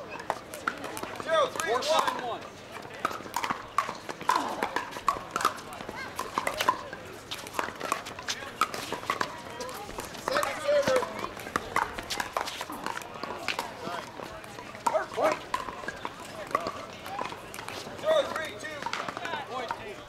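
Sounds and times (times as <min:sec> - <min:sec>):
paddles hitting plastic ball: 0:03.0 - 0:14.0, 0:14.8 - 0:19.8.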